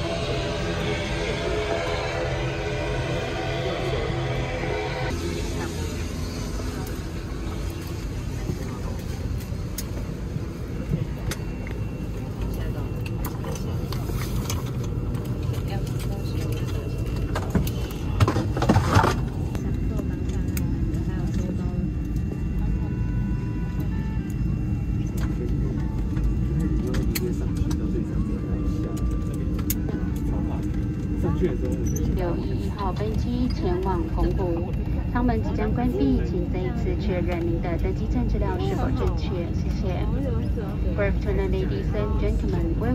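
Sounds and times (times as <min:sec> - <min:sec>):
aircraft cabin rumble: 0:00.0 - 0:42.9
murmur of voices: 0:19.3 - 0:42.9.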